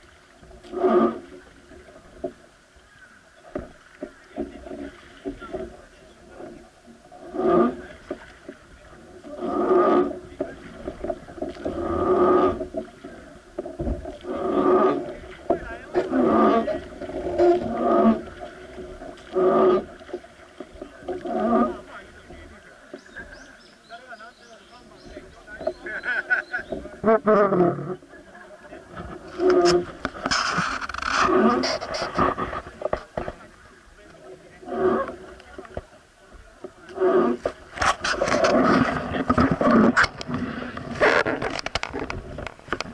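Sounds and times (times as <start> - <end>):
wooden oar creaking: 0.0 - 42.9.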